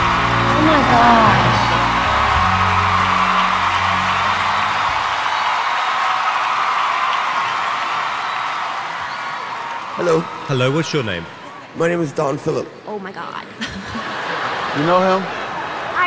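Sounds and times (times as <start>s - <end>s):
background music with bass: 0.0s - 5.2s
audience cheering: 0.0s - 11.8s.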